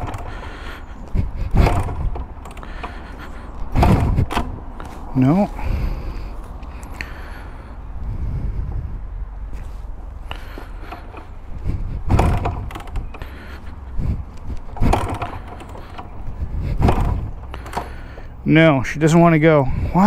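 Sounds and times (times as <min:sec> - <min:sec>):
motorcycle kickstarter clunks: 0:00.0 - 0:05.1, 0:10.3 - 0:18.4.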